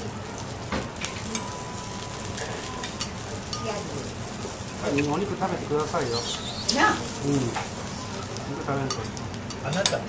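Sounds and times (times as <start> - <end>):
food sizzling: 0.0 - 10.0.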